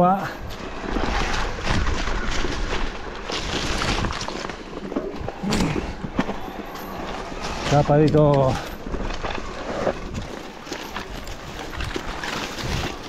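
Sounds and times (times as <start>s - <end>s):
bike rattling over bumps: 0.0s - 13.0s
bike tyres rolling on dirt: 0.0s - 13.0s.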